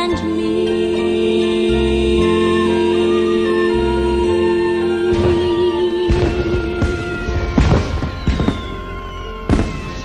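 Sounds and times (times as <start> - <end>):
film score music: 0.0 - 10.0
falling whistle: 2.3 - 10.0
fireworks bangs: 5.1 - 10.0.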